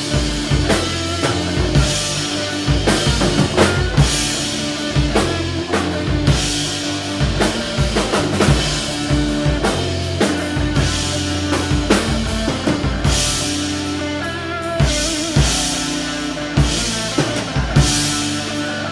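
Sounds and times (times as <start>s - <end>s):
electric guitars sustained notes: 0.0s - 18.9s
rock band playing: 0.0s - 18.9s.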